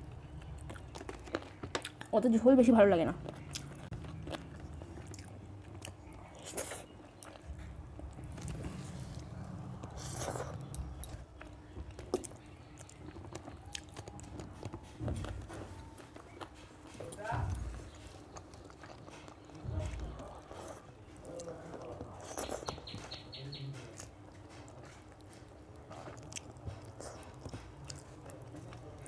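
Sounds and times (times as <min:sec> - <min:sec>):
person chewing: 0:00.0 - 0:02.1, 0:03.2 - 0:29.0.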